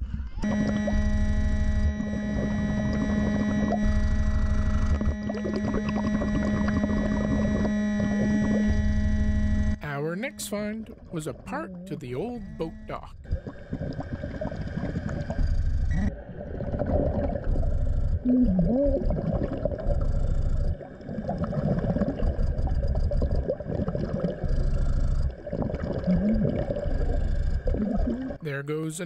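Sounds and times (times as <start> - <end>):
faint steady hum: 0.0 - 29.0.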